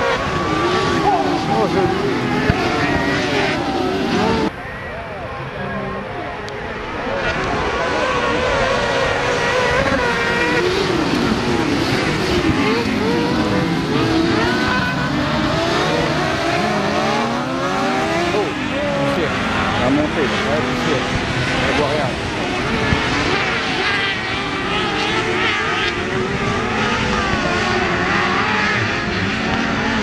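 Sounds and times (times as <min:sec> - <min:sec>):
racing buggy engines revving: 0:00.0 - 0:30.0.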